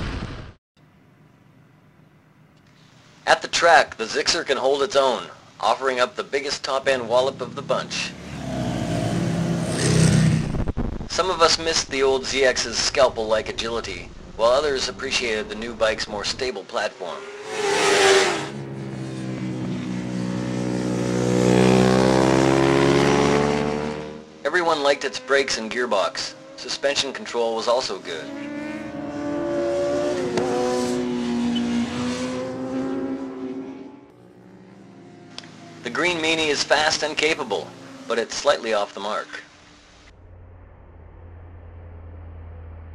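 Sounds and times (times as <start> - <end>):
motorcycle engine revving: 7.0 - 11.1, 17.0 - 25.4, 26.2 - 26.8, 27.9 - 38.3, 40.1 - 42.9.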